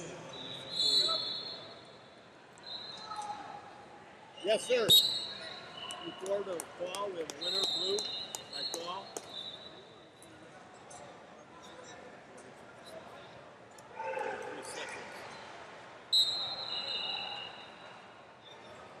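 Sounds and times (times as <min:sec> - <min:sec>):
murmur of voices: 0:00.0 - 0:19.0
referee's whistle blast: 0:00.3 - 0:01.9, 0:04.8 - 0:06.3, 0:07.3 - 0:10.0, 0:16.1 - 0:17.9.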